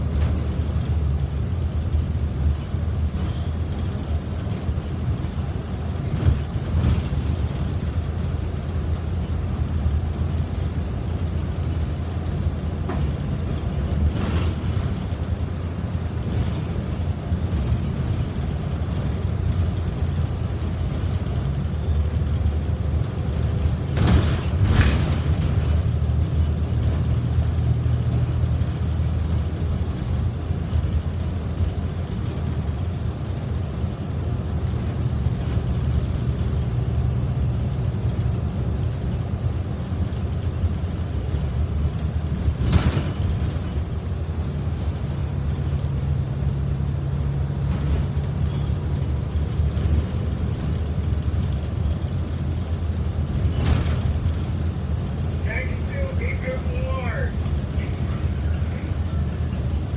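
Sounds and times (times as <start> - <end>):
bus engine drone: 0.0 - 59.9
road noise: 0.0 - 59.9.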